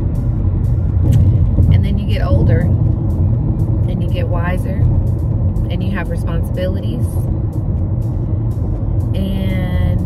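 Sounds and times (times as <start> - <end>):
background music: 0.0 - 10.0
road and engine rumble: 0.0 - 10.0.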